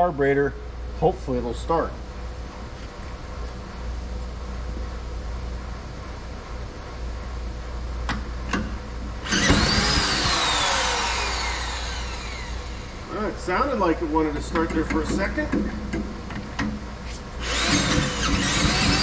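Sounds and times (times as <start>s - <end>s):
small engine cranking and whining: 9.3s - 12.8s, 17.4s - 19.0s.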